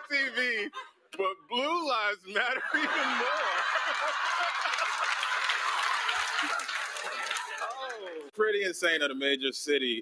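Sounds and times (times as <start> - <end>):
audience laughter: 2.5 - 7.4
audience applauding: 3.0 - 8.3.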